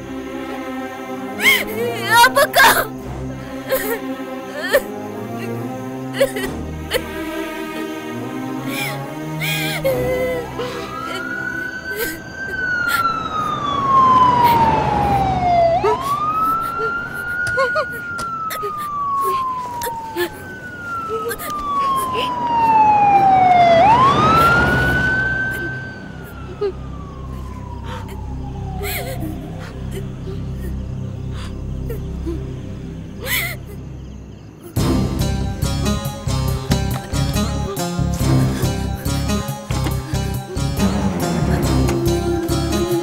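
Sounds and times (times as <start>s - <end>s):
wailing siren: 7.8s - 30.8s, 35.6s - 43.0s.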